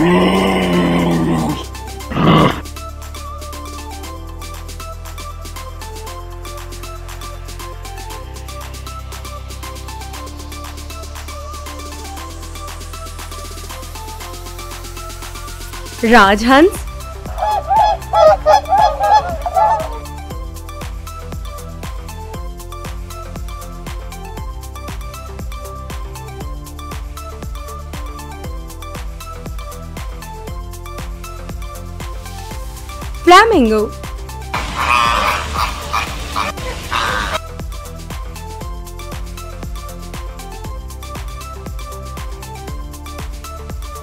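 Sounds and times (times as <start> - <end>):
background music with steady beat: 0.0 - 44.0
flamingos calling: 17.2 - 20.2, 34.6 - 37.4
swan honking: 17.2 - 20.2, 34.6 - 37.4.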